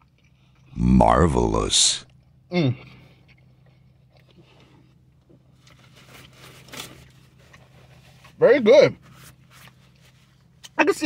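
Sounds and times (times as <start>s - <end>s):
chewing food: 0.0s - 0.8s, 2.1s - 8.3s.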